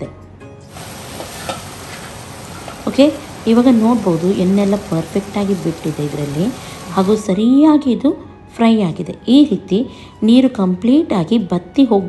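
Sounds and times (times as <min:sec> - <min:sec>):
food sizzling in oil: 0:00.7 - 0:07.3.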